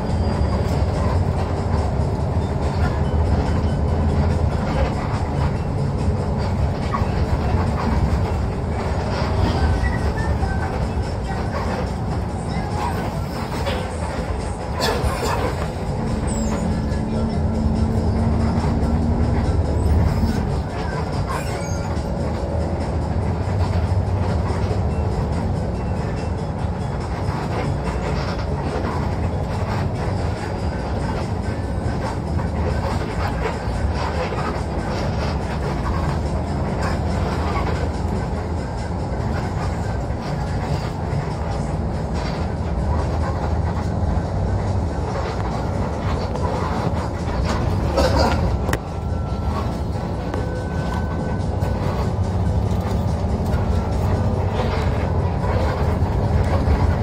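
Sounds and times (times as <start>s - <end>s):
diesel engine drone: 0.0s - 57.0s
road noise: 0.0s - 57.0s.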